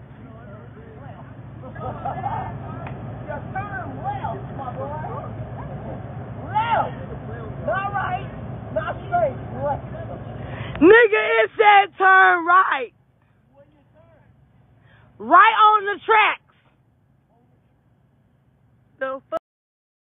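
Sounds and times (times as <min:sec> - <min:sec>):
truck engine rumble: 0:00.0 - 0:19.3
people talking: 0:00.1 - 0:12.9, 0:15.2 - 0:16.5, 0:19.0 - 0:19.4.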